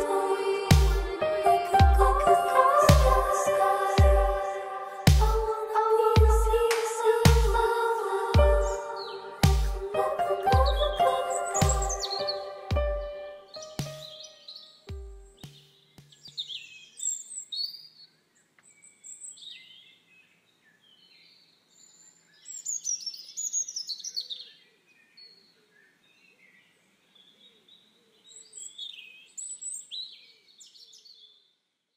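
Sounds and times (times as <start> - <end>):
birds chirping and singing: 8.4 - 14.8.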